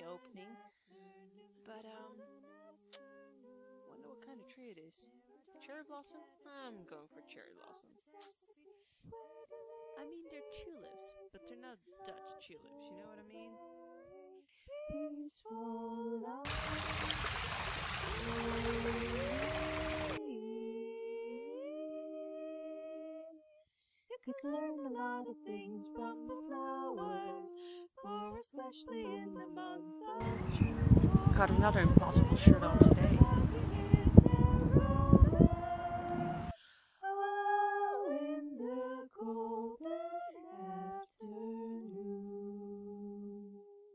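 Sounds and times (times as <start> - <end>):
women singing a capella harmony: 0.0 - 43.8
fountain water splashing: 16.5 - 20.2.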